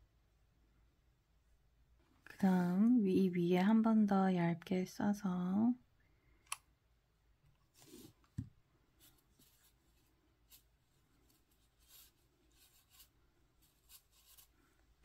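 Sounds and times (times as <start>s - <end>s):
fingers rustling yarn: 7.6s - 15.0s.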